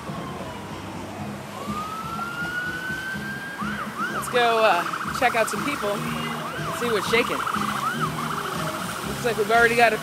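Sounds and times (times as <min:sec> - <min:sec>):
emergency siren wailing: 0:00.0 - 0:10.0.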